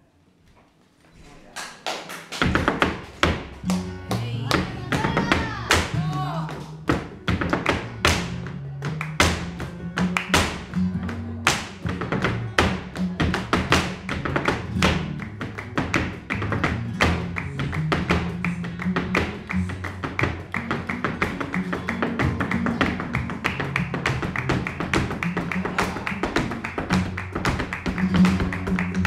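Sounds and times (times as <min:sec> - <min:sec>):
hand-clapping: 0:01.6 - 0:04.3, 0:07.4 - 0:11.8, 0:13.7 - 0:29.0
flamenco guitar: 0:02.2 - 0:29.0
flamenco footwork taps: 0:02.3 - 0:29.0.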